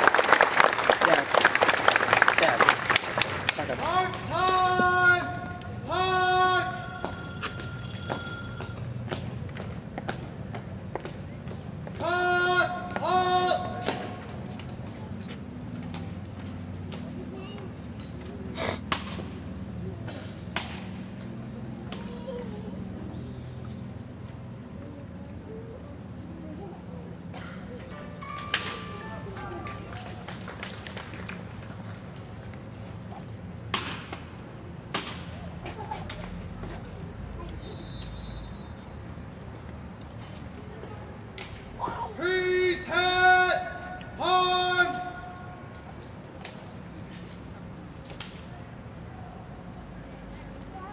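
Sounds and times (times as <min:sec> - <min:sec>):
person shouting a command: 0:03.7 - 0:07.0, 0:12.0 - 0:13.9, 0:41.8 - 0:45.5.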